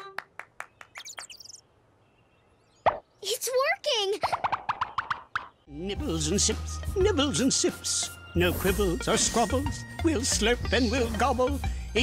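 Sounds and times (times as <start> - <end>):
cartoon chicks cheeping: 0.9 - 1.6.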